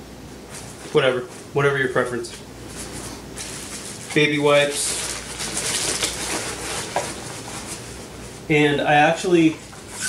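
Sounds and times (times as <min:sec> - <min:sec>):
rustling nylon and plastic packet: 0:02.8 - 0:07.9.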